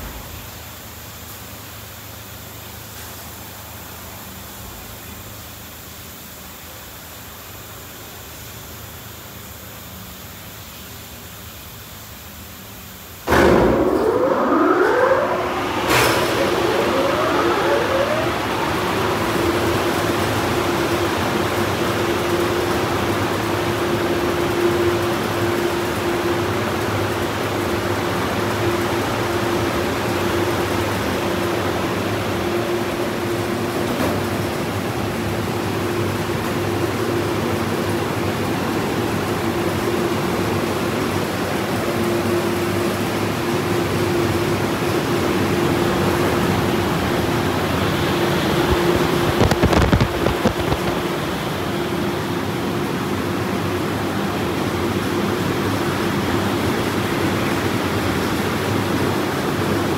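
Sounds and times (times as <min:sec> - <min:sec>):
dryer blower rushing air: 0:13.2 - 0:59.9
blower motor hum: 0:13.3 - 0:59.9.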